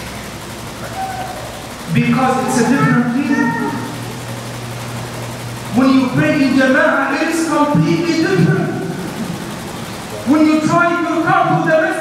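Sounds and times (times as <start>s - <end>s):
steady low hum: 0.0s - 12.0s
man's voice through microphone: 1.9s - 3.9s, 5.7s - 9.0s, 10.2s - 12.0s.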